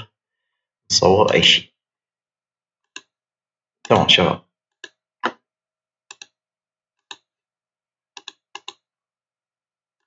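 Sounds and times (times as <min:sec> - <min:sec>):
computer mouse clicks: 0:02.8 - 0:03.2, 0:04.7 - 0:05.4, 0:06.1 - 0:06.4, 0:07.0 - 0:07.3, 0:08.1 - 0:08.8.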